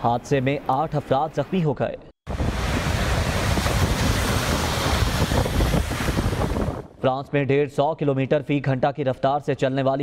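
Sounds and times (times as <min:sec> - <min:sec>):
breaking sea waves: 0:02.3 - 0:06.9
storm wind: 0:02.3 - 0:07.0
wind buffeting microphone: 0:02.3 - 0:07.0.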